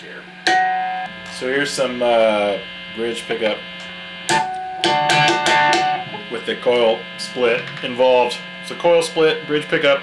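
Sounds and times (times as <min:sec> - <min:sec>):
distorted electric guitar: 0:00.3 - 0:10.0.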